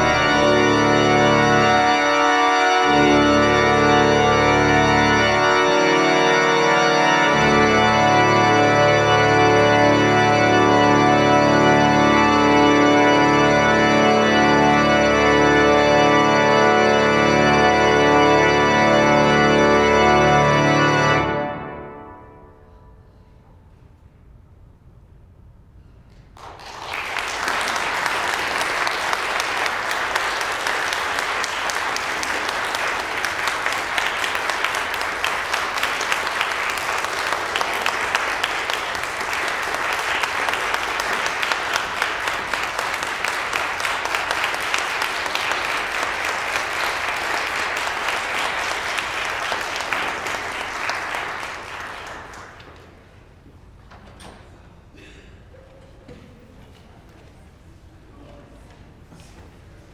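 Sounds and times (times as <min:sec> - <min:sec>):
audience applauding: 0:26.4 - 0:53.2.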